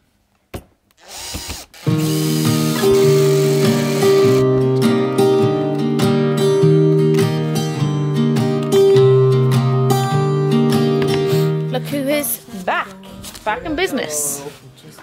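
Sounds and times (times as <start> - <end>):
drill driving screws: 1.0 - 4.4
acoustic guitar music: 1.8 - 14.9.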